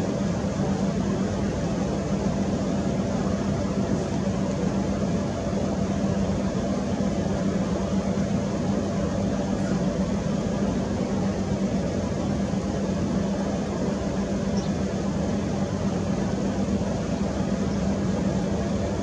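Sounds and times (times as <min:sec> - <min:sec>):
mechanical hum: 0:00.0 - 0:19.0.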